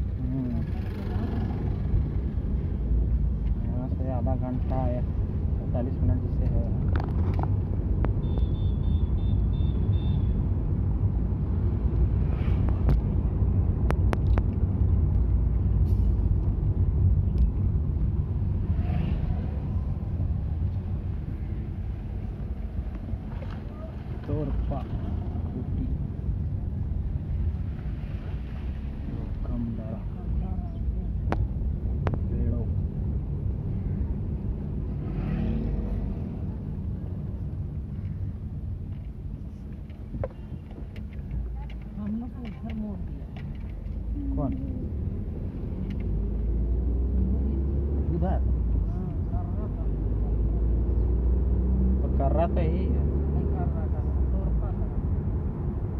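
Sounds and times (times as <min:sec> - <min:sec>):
car engine and road rumble: 0:00.0 - 0:55.9.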